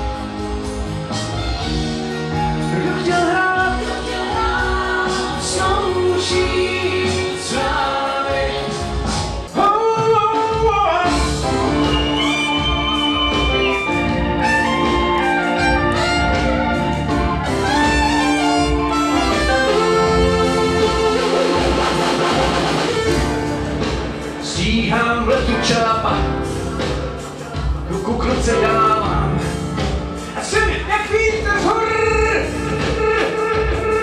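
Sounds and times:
electronic keyboard music: 0:00.0 - 0:34.0.

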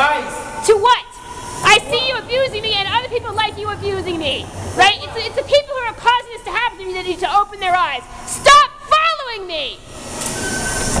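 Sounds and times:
person speaking: 0:00.0 - 0:08.5
subway train rumble: 0:00.6 - 0:08.4, 0:09.5 - 0:11.0
train wheel squeal: 0:09.9 - 0:11.0.

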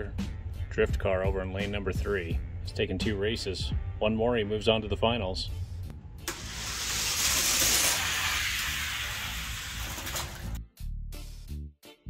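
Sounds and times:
toy cars rattling down plastic track: 0:06.3 - 0:10.6.

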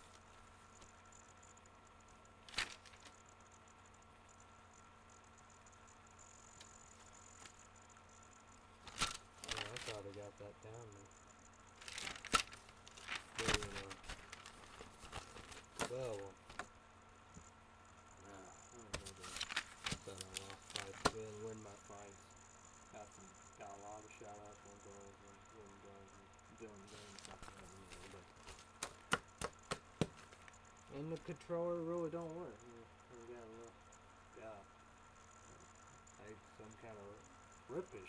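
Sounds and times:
crinkling handling noises: 0:02.5 - 0:03.2, 0:08.8 - 0:10.2, 0:11.8 - 0:16.7, 0:18.9 - 0:21.8, 0:26.8 - 0:30.6
sharp clicking handling noises: 0:18.8 - 0:21.4.

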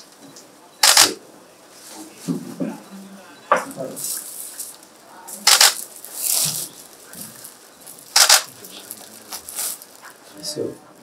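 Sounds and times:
low murmured voices: 0:00.0 - 0:11.0
camera shutters clicking: 0:00.8 - 0:01.2, 0:05.4 - 0:05.8, 0:08.1 - 0:08.5.

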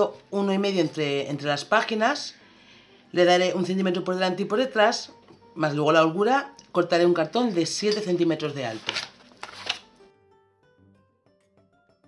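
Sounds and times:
quiet plucked background music: 0:00.0 - 0:12.0.

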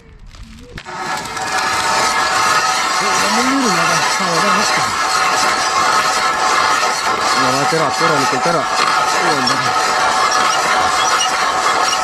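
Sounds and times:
ice auger grinding into ice: 0:00.8 - 0:12.0.

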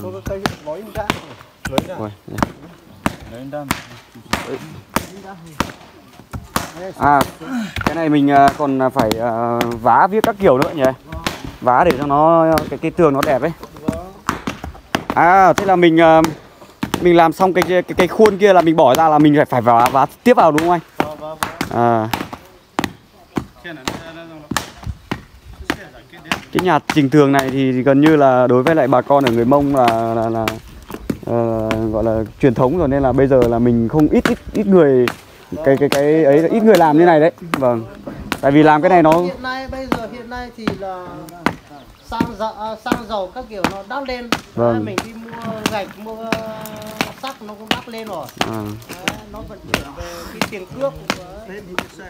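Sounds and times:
man talking: 0:00.0 - 0:05.8, 0:06.6 - 0:14.3, 0:25.6 - 0:52.0
rammers pounding earth: 0:00.0 - 0:52.0.

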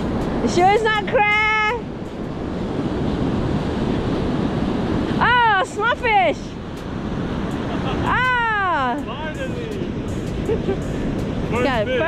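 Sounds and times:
surf washing onto beach: 0:00.0 - 0:12.0
wind buffeting microphone: 0:00.0 - 0:12.0.

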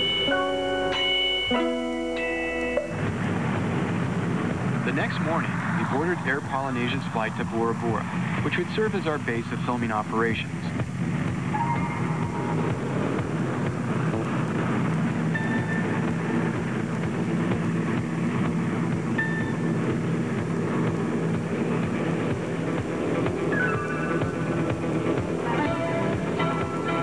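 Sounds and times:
background music sustained tones: 0:00.0 - 0:27.0.

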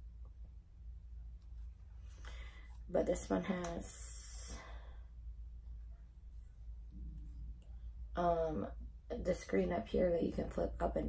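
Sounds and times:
low steady hum: 0:00.0 - 0:11.0
soft breath out: 0:02.1 - 0:02.8.

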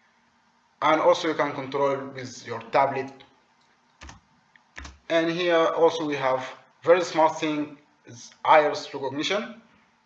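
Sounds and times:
computer key clicks: 0:04.0 - 0:05.0.

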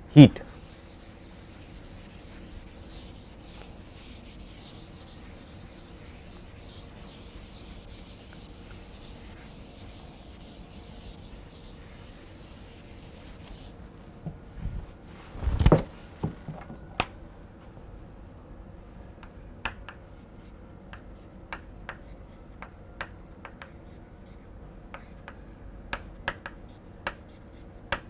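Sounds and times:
duster rubbing on chalkboard: 0:00.6 - 0:13.8.

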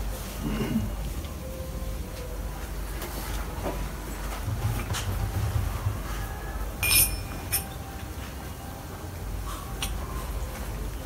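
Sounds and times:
low steady rumble: 0:00.0 - 0:11.0
bright clink: 0:06.8 - 0:07.8.

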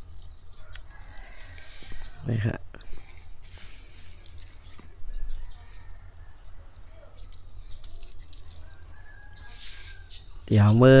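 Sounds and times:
soft rustle: 0:00.0 - 0:10.5.

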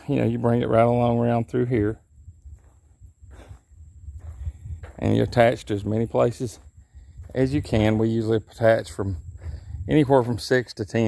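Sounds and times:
faint low rumble: 0:00.4 - 0:10.0
faint breath-like hiss: 0:03.3 - 0:04.8, 0:09.3 - 0:09.9.

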